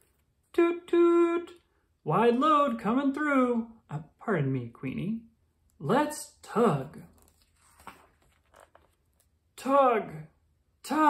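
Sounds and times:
book page turning: 7.0 - 9.4.

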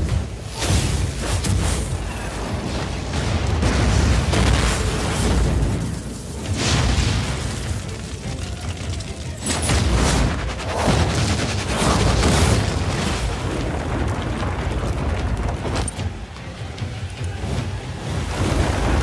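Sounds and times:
deep booms and blasts: 0.0 - 8.0, 9.5 - 15.9
continuous low rumble: 0.0 - 19.0
dramatic score: 0.0 - 19.0.

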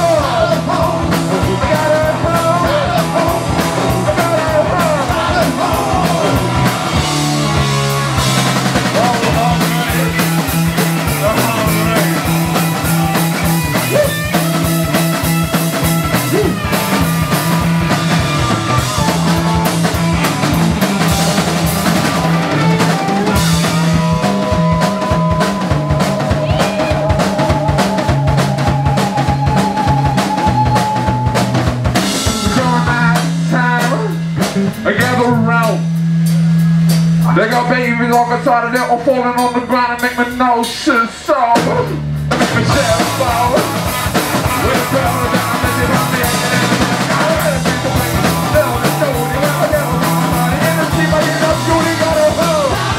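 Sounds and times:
repeating bass line: 0.0 - 39.8, 41.6 - 52.9
distorted electric guitar: 0.0 - 52.9
drum kit: 0.0 - 52.9.

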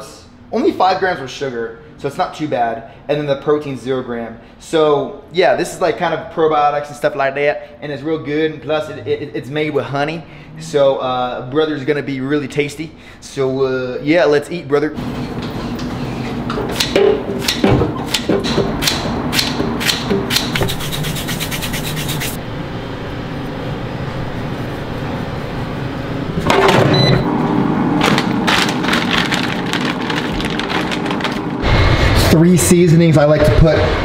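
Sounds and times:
vegetable chopper snipping: 16.7 - 22.4
handling noise: 28.0 - 31.6.

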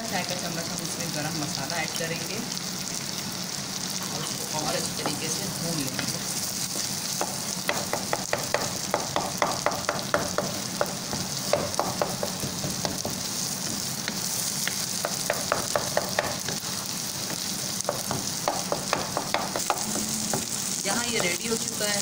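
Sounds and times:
masala sizzling in ghee: 0.0 - 22.0.

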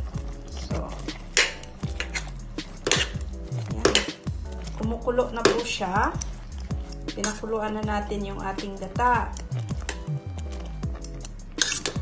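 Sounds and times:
metal spoon scraping a pot: 0.0 - 7.8, 8.4 - 12.0.

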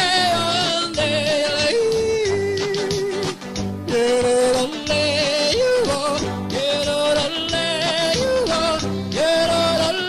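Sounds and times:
backing music with low beat: 0.0 - 10.0.

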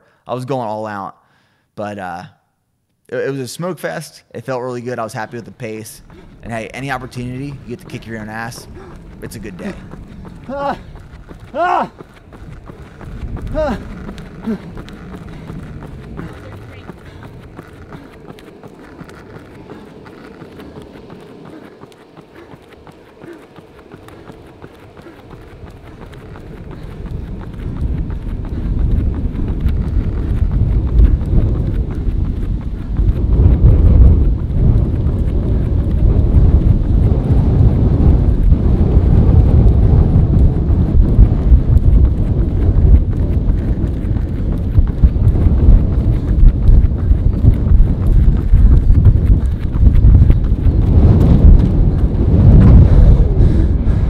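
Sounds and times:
hard breathing: 1.2 - 1.8, 5.9 - 33.0, 52.6 - 54.0
running footfalls on rubber track: 4.4 - 54.0
wind buffeting on microphone: 4.7 - 54.0.

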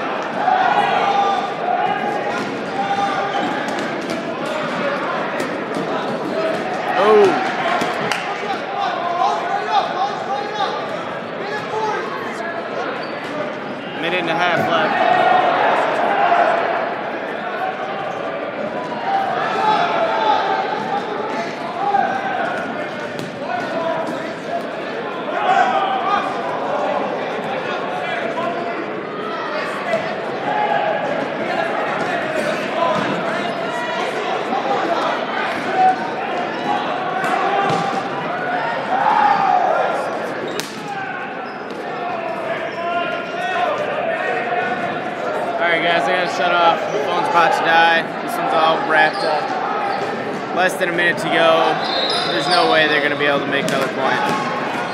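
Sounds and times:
people shouting: 6.4 - 10.8
balls bouncing off floor and walls: 53.6 - 54.8.

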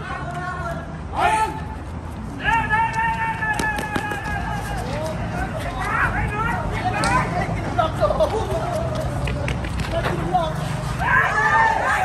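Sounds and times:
people talking and calling out: 0.0 - 12.0
traffic rumble: 0.0 - 12.0
running footsteps on concrete: 1.5 - 10.7.

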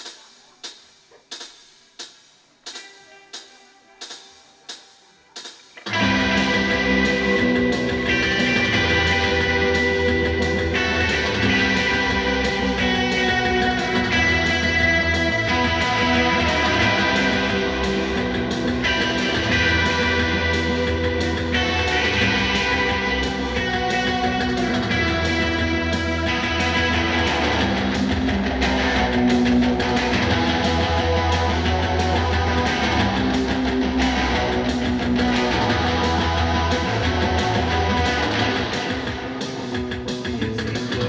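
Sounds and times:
faint held guitar notes: 2.6 - 41.0
loud rock band playing: 5.5 - 41.0.

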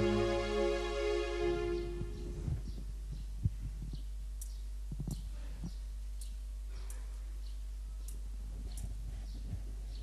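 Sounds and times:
electrical hum: 0.0 - 10.0
soft low thumps: 1.8 - 6.7, 7.6 - 10.0.

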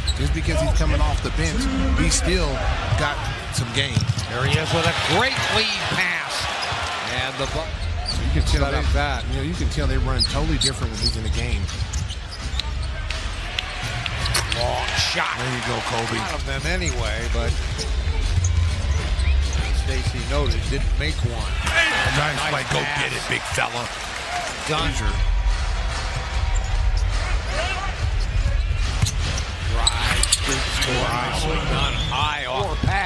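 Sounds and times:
crowd noise: 0.0 - 33.0
indistinct voices: 0.6 - 2.5
crowd rumble: 0.6 - 3.7.

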